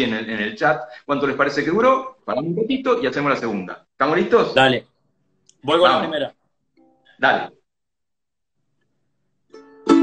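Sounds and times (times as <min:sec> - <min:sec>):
ukulele strumming: 0:09.5 - 0:10.0.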